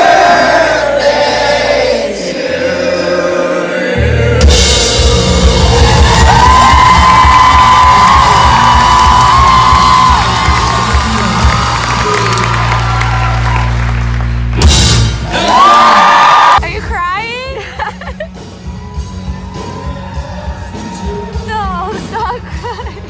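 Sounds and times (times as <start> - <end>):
rock band playing loudly: 4.0 - 15.5, 16.6 - 23.0
audience cheering and whooping: 4.9 - 16.6, 18.4 - 22.1.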